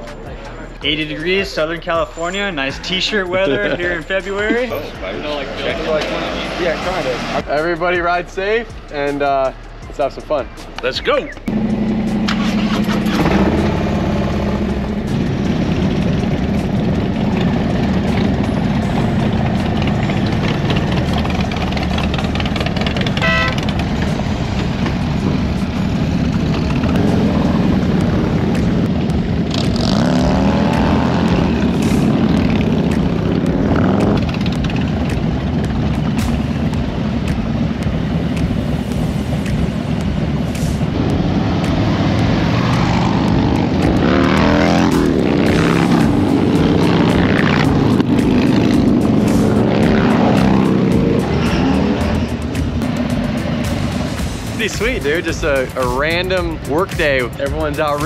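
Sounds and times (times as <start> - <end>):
motorcycle engines revving: 0.0 - 8.2, 10.7 - 58.0.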